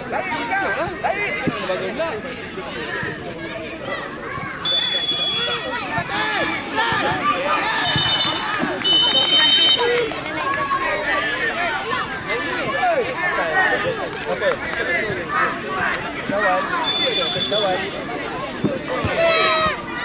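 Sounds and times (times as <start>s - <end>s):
crowd shouting and calling: 0.0s - 20.0s
referee's whistle blasts: 4.6s - 5.7s, 7.8s - 9.9s, 16.8s - 18.0s.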